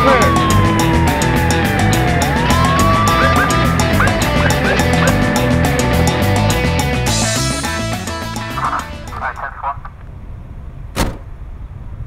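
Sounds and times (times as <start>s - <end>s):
plastic door shutting: 11.0s - 11.3s.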